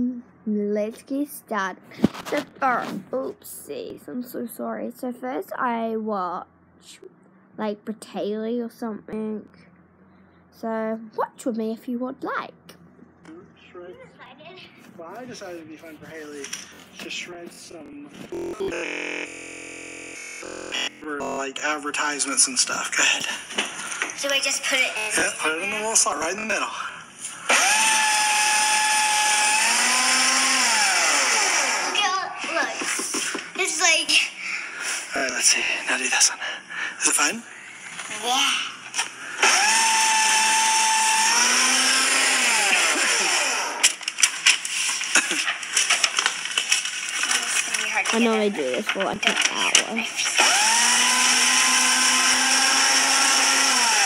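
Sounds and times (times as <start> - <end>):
paper shredder motor whine: 18.3 - 21.5, 27.4 - 32.0, 39.0 - 44.2, 48.8 - 54.0
electronic synthesizer tones: 18.3 - 21.6
paper crackling as it is cut: 43.8 - 50.4.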